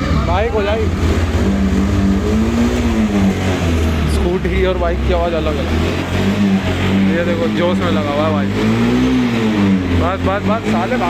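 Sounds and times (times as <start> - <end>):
higher steady engine note: 0.0 - 11.0
motorcycle engine running: 0.0 - 11.0.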